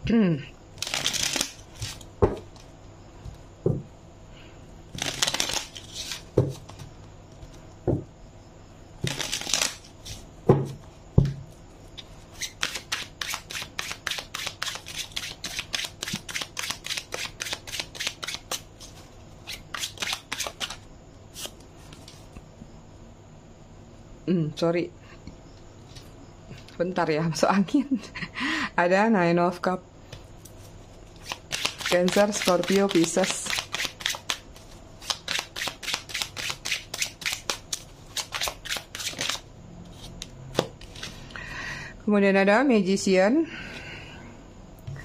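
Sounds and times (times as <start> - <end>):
cards riffle shuffled: 0.8 - 2.6, 4.9 - 7.6, 9.0 - 10.2, 12.3 - 22.3, 30.4 - 41.2.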